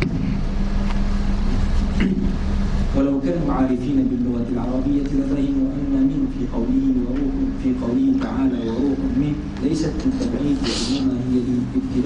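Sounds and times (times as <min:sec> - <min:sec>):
constant low hum: 0:00.0 - 0:12.0.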